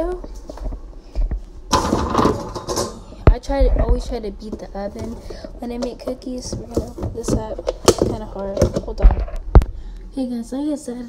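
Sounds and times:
plastic tub handling: 0:03.9 - 0:09.0.

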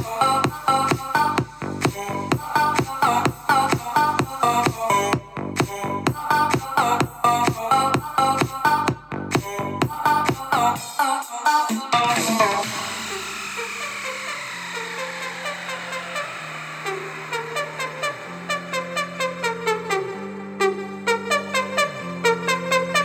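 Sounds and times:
electronic bass line and beat: 0:00.0 - 0:11.0, 0:11.7 - 0:23.0
falling synth sweep: 0:11.9 - 0:23.0.

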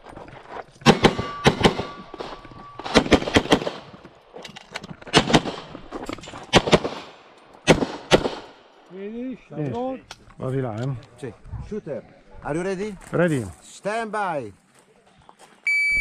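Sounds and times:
pistol shots: 0:00.8 - 0:04.0, 0:05.1 - 0:05.8, 0:06.5 - 0:08.6.

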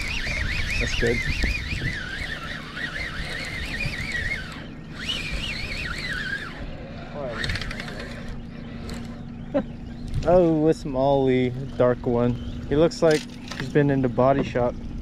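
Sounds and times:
fishing reel whining: 0:00.0 - 0:14.7.

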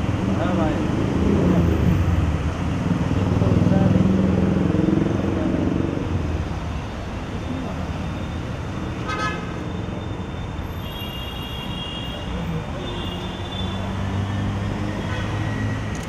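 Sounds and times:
street traffic: 0:00.0 - 0:16.0
car horns tooting: 0:09.0 - 0:09.6.

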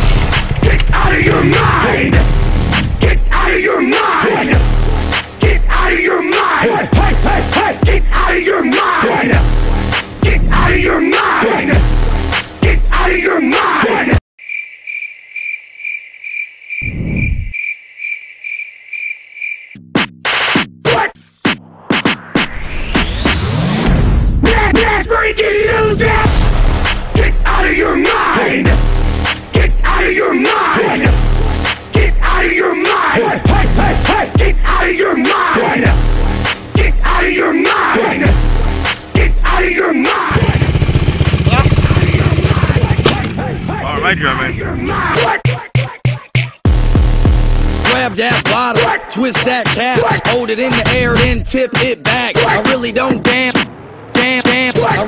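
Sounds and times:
cricket chirping: 0:14.4 - 0:19.8
quad bike engine running: 0:40.3 - 0:43.9.

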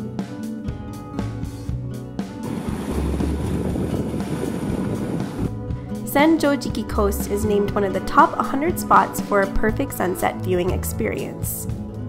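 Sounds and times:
waves breaking over rocks: 0:02.4 - 0:05.6
wind rumbling on microphone: 0:02.4 - 0:06.0.

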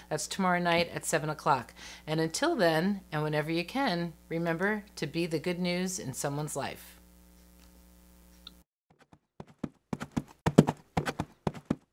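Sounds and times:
galloping hoofbeats: 0:09.0 - 0:11.9.

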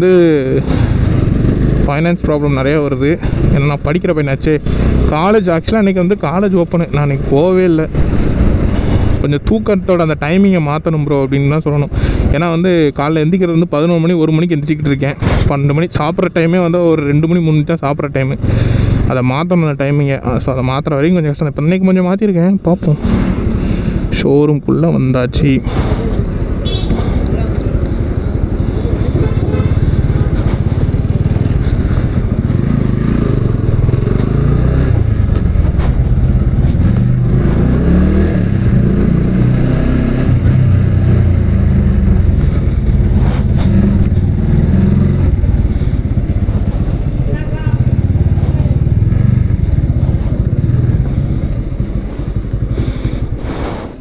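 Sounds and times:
motorcycle engine running: 0:00.0 - 0:09.3, 0:25.9 - 0:54.0.

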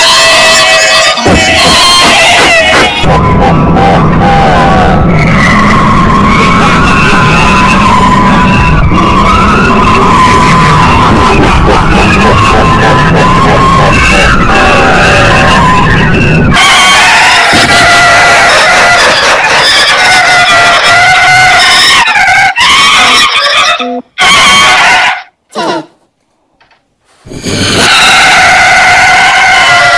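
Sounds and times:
distorted remix of warbling tones: 0:00.0 - 0:24.9, 0:27.3 - 0:29.9.

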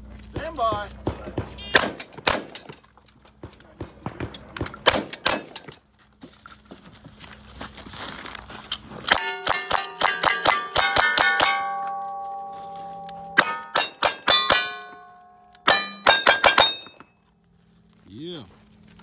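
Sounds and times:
steel targets clanging and ringing: 0:04.8 - 0:05.8, 0:09.1 - 0:17.2.

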